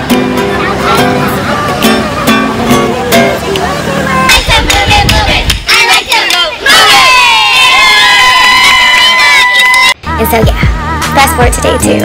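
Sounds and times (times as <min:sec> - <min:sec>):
people clapping: 0:04.3 - 0:07.1, 0:07.7 - 0:10.0
voices holding long shout: 0:05.4 - 0:10.0
people cheering and whooping: 0:05.7 - 0:10.0.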